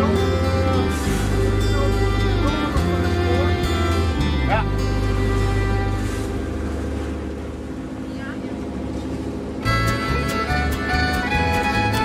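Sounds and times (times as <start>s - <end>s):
boat engine running: 0.0s - 12.0s
water noise: 0.0s - 12.0s
wind: 0.0s - 12.0s.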